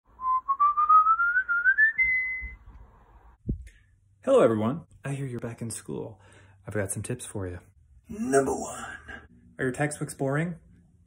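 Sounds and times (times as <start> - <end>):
whistling rising notes: 0.1 - 3.2.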